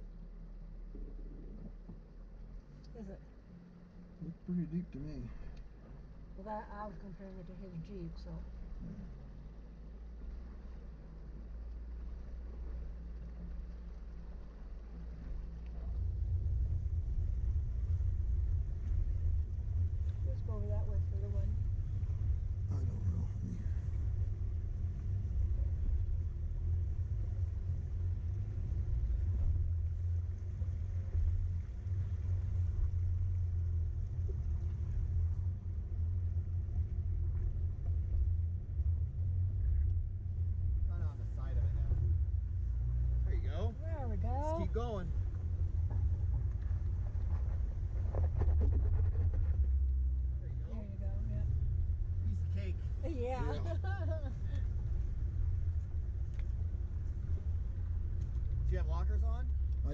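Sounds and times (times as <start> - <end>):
vehicle rumble on rocky trail: 0.0 - 59.9.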